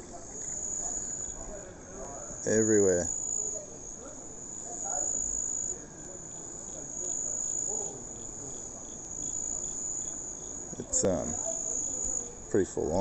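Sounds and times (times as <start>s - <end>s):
crickets chirring: 0.0s - 13.0s.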